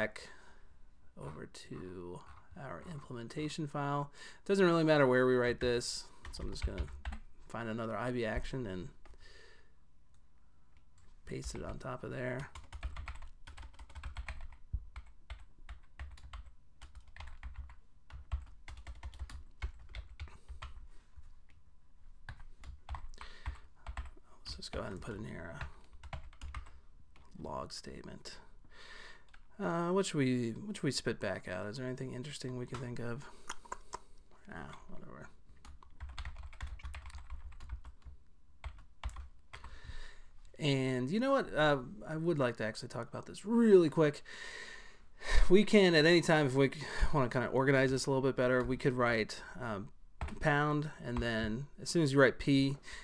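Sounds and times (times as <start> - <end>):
typing on a computer keyboard: 6.2 - 7.2, 12.4 - 20.8, 22.3 - 26.7, 35.6 - 39.7.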